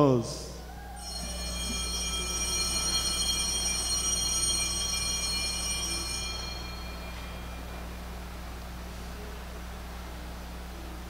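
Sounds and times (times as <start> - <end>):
steady low hum: 0.0 - 11.0
altar bell ringing: 1.0 - 9.0.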